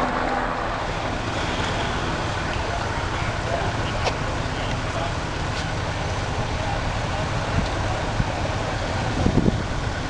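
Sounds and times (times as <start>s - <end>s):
distant voices: 0.0s - 10.0s
traffic rumble: 0.0s - 10.0s
wind: 0.0s - 10.0s.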